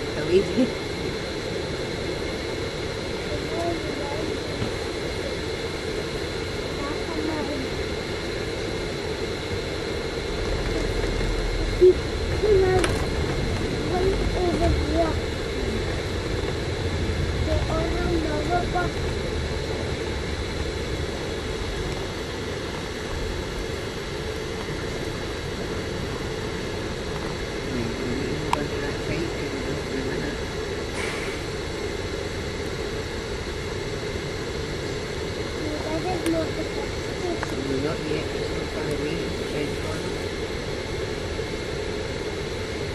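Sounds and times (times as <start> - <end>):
bus engine and road noise: 0.0 - 42.9
deep rumble: 0.0 - 42.9
faint passenger voices: 0.0 - 42.9.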